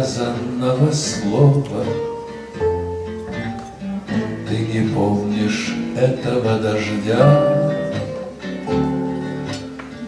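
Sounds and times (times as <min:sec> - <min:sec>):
double bass notes: 0:00.0 - 0:09.8
acoustic guitars playing: 0:00.0 - 0:10.0.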